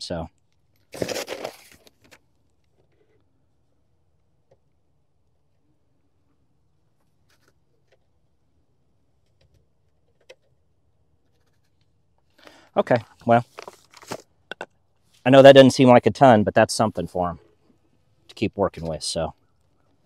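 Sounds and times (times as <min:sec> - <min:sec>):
person speaking: 0:12.8 - 0:13.6, 0:15.2 - 0:17.5, 0:18.3 - 0:19.4.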